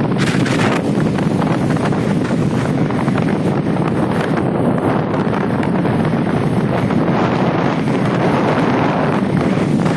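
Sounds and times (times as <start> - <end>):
wind buffeting microphone: 0.0 - 9.9.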